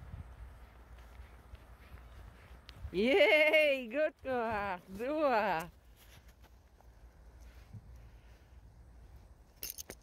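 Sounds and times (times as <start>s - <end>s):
wind rumble on microphone: 0.0s - 3.1s.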